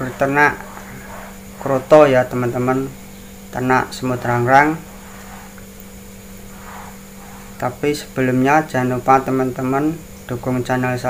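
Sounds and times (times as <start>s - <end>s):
person speaking: 0.0s - 5.6s
faint background hiss: 0.0s - 11.0s
low electrical hum: 0.0s - 11.0s.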